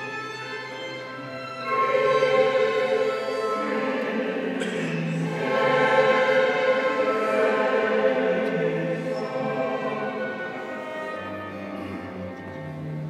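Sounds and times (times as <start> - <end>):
orchestral strings: 0.0 - 13.0
choir singing sustained chords: 0.7 - 13.0.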